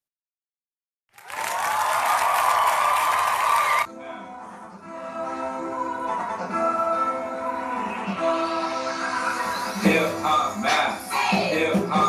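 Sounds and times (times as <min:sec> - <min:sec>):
recorded applause and cheering: 0:01.1 - 0:03.9.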